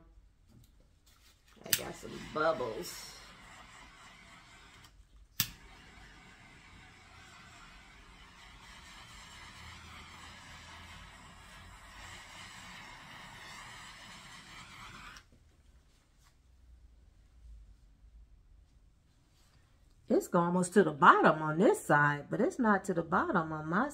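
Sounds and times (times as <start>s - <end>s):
handheld torch hissing: 1.6s - 15.2s.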